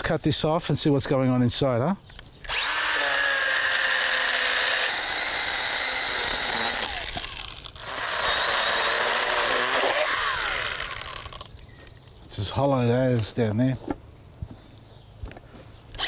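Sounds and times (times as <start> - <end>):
cordless saw cutting wood: 2.5 - 11.5.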